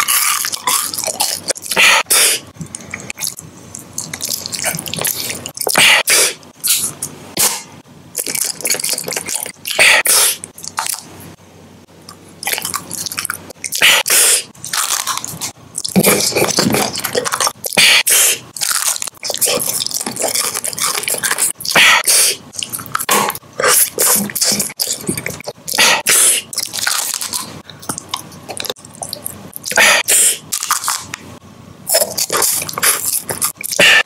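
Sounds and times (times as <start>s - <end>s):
person chewing candy: 0.0s - 7.1s, 8.1s - 11.1s, 12.0s - 31.2s, 31.9s - 34.0s.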